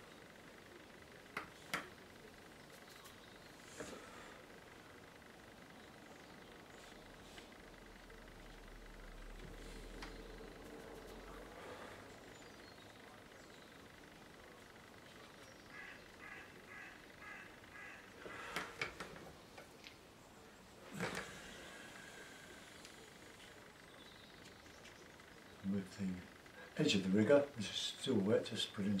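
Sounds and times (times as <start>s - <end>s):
bird calling: 15.4s - 18.8s.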